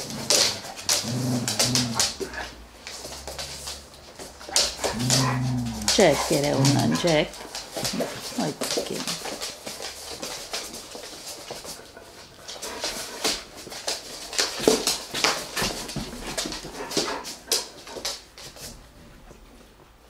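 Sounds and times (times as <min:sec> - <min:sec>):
clicks and rustles: 0:00.0 - 0:18.8
dogs sniffing: 0:00.0 - 0:18.8.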